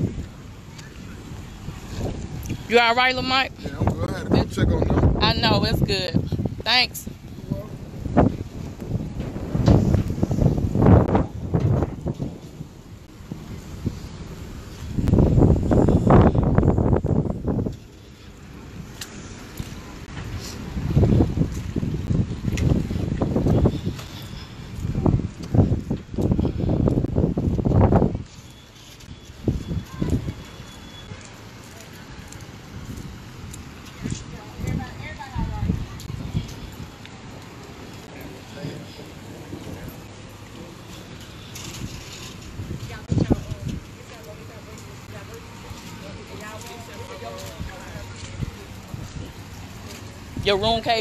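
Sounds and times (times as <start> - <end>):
wind buffeting microphone: 0.0 - 51.0
distant people talking: 33.8 - 41.5.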